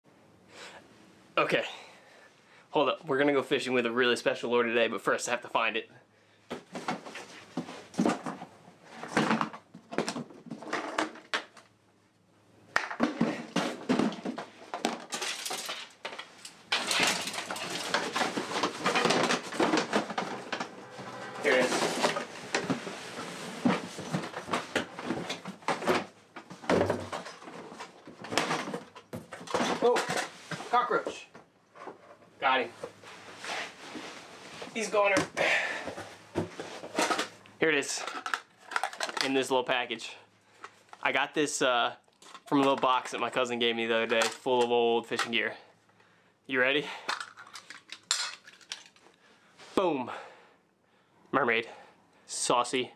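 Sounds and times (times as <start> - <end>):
rummaging through fishing gear: 13.0 - 30.8, 47.0 - 49.1.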